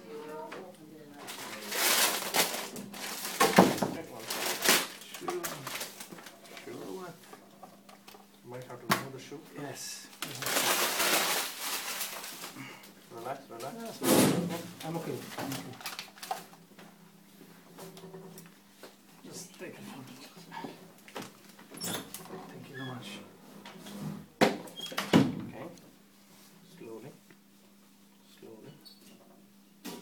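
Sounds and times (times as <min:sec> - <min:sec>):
scraping rustling noise: 0:01.2 - 0:07.4, 0:10.3 - 0:12.6.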